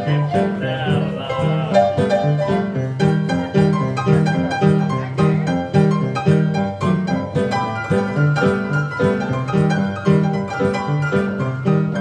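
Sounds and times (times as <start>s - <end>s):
stride piano playing: 0.0s - 12.0s.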